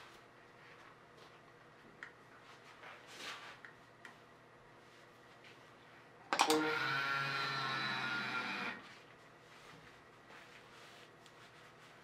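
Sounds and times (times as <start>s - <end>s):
small electric motor running: 6.5s - 8.8s.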